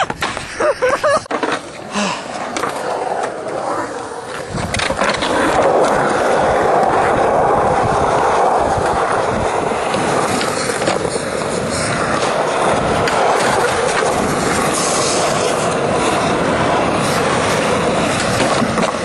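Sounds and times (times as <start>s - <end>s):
skateboard grinding on ledge: 0.0s - 19.0s
skateboard wheels rolling on concrete: 0.0s - 19.0s.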